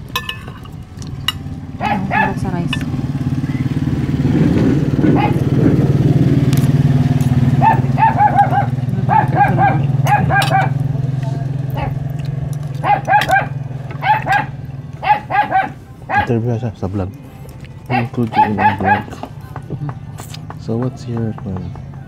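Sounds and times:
vehicle engine droning: 0.0s - 22.0s
dog barking: 1.8s - 2.8s, 5.0s - 5.6s, 7.4s - 10.9s, 11.6s - 12.0s, 12.7s - 16.4s, 17.8s - 19.3s.

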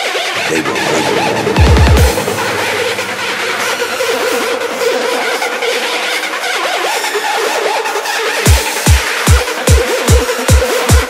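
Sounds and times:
wobbling synth lines: 0.4s - 8.7s
held synth note: 0.4s - 8.9s
noisy synth wash: 0.4s - 9.2s.

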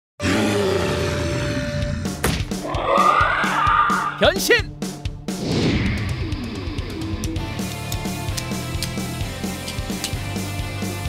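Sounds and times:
dinosaur roar: 0.2s - 4.2s.

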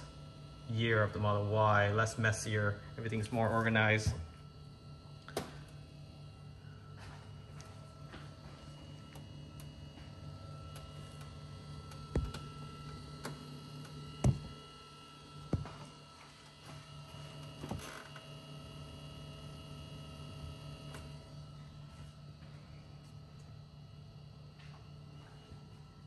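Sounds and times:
faint steady whine: 0.0s - 26.0s
steady low hum: 0.0s - 26.0s.

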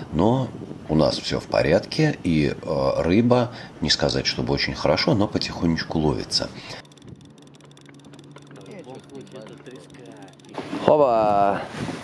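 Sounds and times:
steady low hum: 0.0s - 11.8s
fishing reel clicking: 5.4s - 11.3s.

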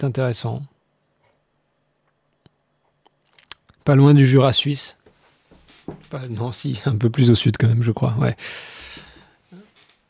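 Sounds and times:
man speaking: 0.0s - 0.7s, 3.8s - 5.0s, 6.0s - 8.4s.

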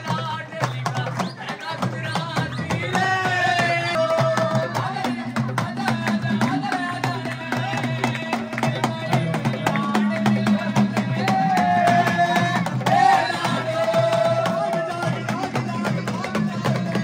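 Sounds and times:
dholak and hand percussion: 0.0s - 17.0s.

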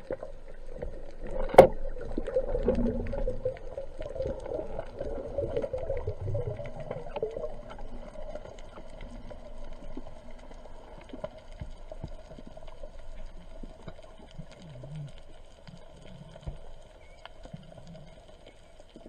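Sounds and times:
muffled underwater hiss: 0.0s - 19.0s
small crackling ticks: 0.0s - 19.0s.

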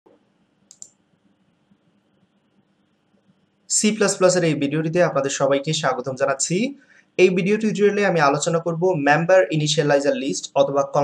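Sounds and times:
faint steady hum: 0.1s - 11.0s
computer mouse clicks: 0.7s - 1.0s.

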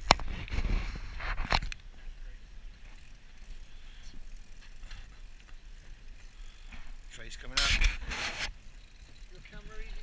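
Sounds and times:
fishing reel ticking: 2.6s - 10.0s.

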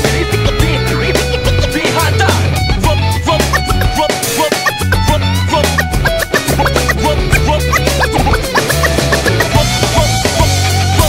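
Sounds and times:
hip-hop beat and bassline: 0.0s - 10.6s
turntable scratching: 3.4s - 9.7s.

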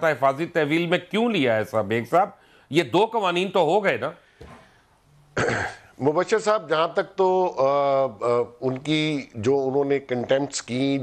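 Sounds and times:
person clearing throat: 5.4s - 5.9s.

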